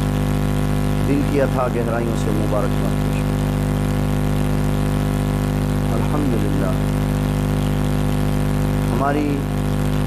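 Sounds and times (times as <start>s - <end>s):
low mechanical hum: 0.0s - 10.0s
people speaking: 1.1s - 3.4s, 5.9s - 7.0s, 8.9s - 9.5s.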